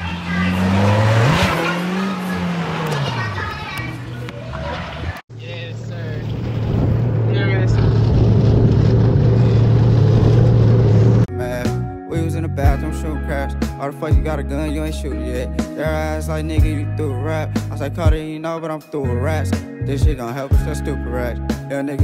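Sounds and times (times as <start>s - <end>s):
voices shouting: 0.0s - 5.2s
engine rising and falling in pitch: 0.0s - 11.3s.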